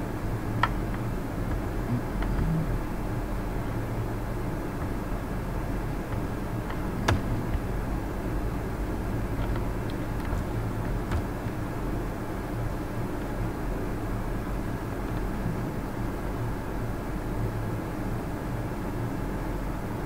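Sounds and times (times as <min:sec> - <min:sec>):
low background hum: 0:00.0 - 0:20.0
sharp clicks: 0:06.0 - 0:07.9.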